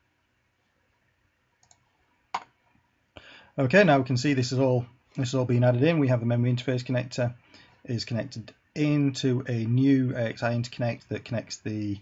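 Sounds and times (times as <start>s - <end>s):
computer mouse clicking: 1.6s - 2.5s.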